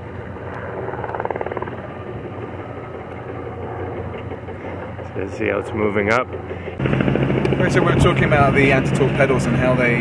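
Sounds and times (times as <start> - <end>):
rapid buzzing pulse: 0.0 - 5.6
low engine hum: 0.0 - 10.0.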